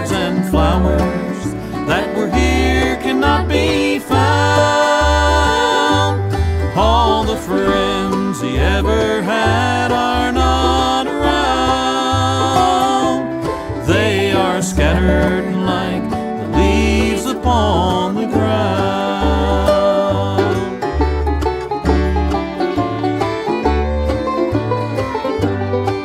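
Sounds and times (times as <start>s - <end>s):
banjo: 0.0s - 26.0s
bluegrass band playing: 0.0s - 26.0s.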